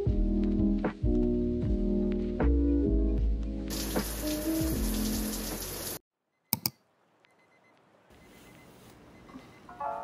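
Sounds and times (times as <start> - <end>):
soft background music: 0.0 - 5.8, 9.4 - 10.0
shower water spraying: 3.7 - 6.0.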